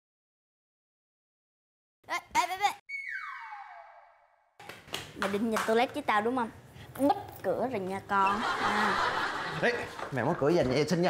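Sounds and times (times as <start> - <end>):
electronic tone sliding down: 2.9 - 4.6.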